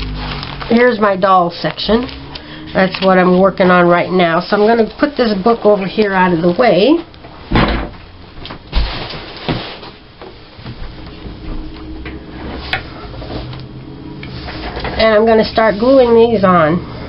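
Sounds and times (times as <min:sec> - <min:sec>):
hands and papers rustling: 0:00.0 - 0:07.3, 0:08.4 - 0:16.6.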